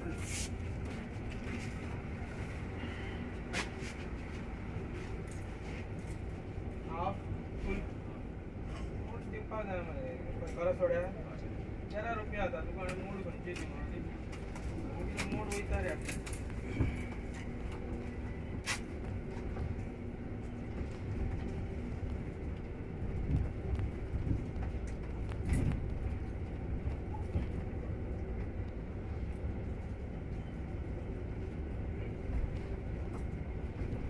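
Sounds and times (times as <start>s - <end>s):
bus cabin low rumble: 0.0s - 34.0s
faint passenger voices: 0.0s - 34.0s.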